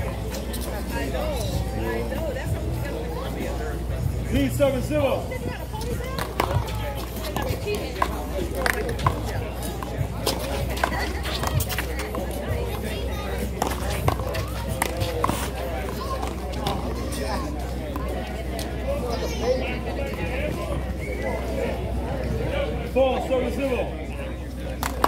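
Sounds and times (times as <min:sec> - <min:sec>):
voices chattering: 0:00.0 - 0:25.0.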